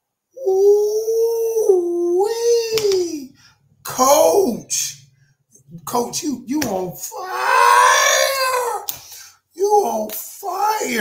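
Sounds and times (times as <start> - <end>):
man howling long high ooh: 0.4 - 2.8, 7.1 - 8.9.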